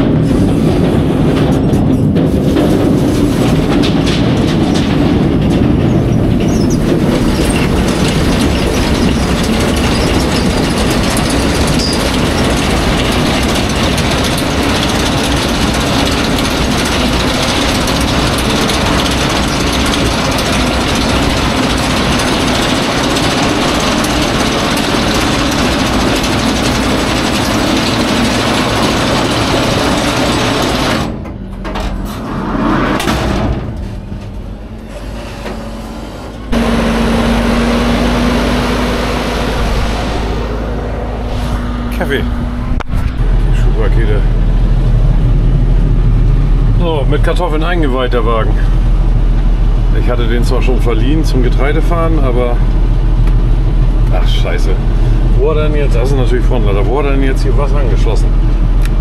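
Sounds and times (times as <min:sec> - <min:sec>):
elevator mechanical rattle: 0:00.0 - 0:32.4, 0:33.0 - 0:59.0
steady engine hum: 0:00.0 - 0:59.0.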